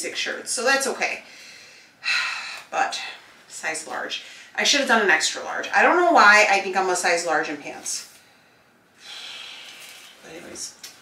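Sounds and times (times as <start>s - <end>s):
person breathing out: 9.0s - 10.2s.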